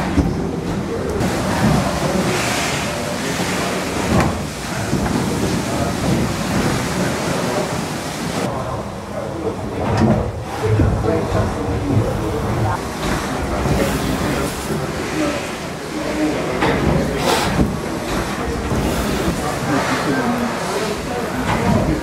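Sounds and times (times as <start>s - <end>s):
steam hissing: 0.0s - 8.6s, 11.6s - 22.0s
background voices: 0.0s - 22.0s.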